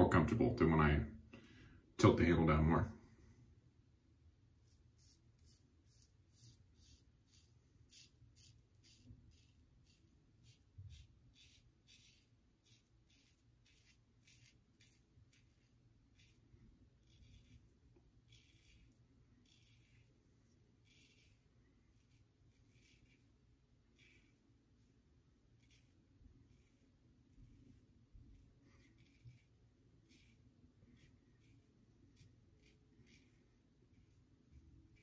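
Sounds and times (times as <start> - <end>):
razor scraping stubble: 4.6 - 35.0.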